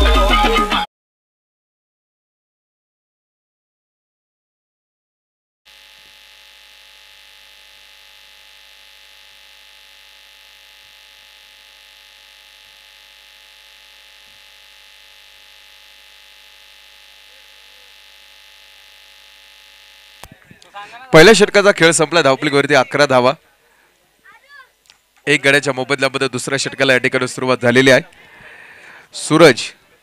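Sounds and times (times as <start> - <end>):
electrical hum and hiss: 5.7 - 30.0.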